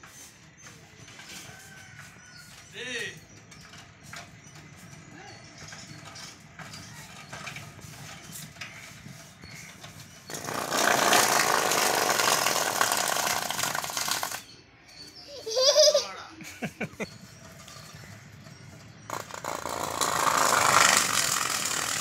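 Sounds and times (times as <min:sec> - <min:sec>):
foam scraping on spinning wheel: 0:05.4 - 0:14.4, 0:19.1 - 0:22.0
bicycle freewheel ticking: 0:10.3 - 0:14.4, 0:19.1 - 0:22.0.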